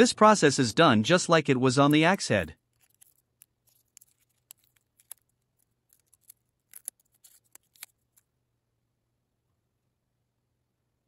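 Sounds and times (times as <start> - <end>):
paper and tape crinkling: 2.5 - 8.3.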